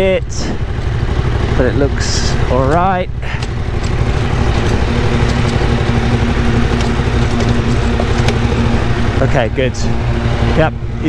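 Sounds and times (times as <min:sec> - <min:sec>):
motorcycle engine running at low revs: 0:00.0 - 0:11.0
tyres on gravel: 0:00.5 - 0:09.8.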